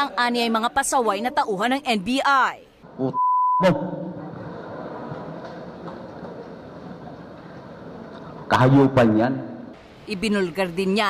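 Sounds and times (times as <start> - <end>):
censor bleep: 3.1 - 3.8.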